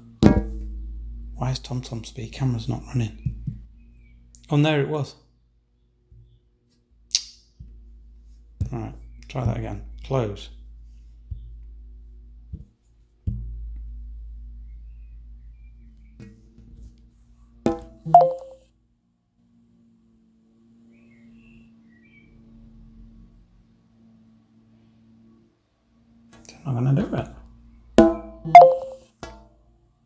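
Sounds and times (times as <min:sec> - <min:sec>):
faint steady hum: 0:00.0 - 0:30.0
sharp click: 0:07.1 - 0:07.5
short beep: 0:18.0 - 0:18.6, 0:28.4 - 0:29.1.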